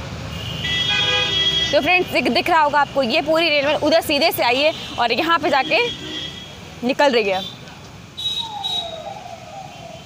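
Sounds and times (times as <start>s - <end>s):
street background noise: 0.0s - 10.0s
distant siren-like wail: 8.2s - 10.0s.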